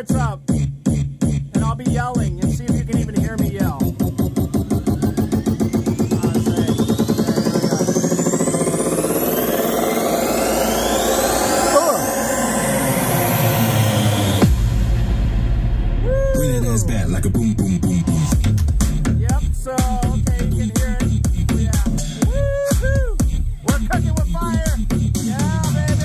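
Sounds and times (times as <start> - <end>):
loud electronic music: 0.0 - 26.0.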